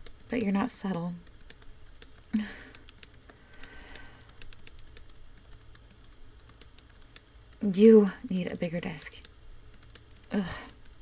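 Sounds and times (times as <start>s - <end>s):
keyboard typing: 0.0s - 7.8s, 8.7s - 11.0s
woman vocal sound: 10.3s - 10.8s.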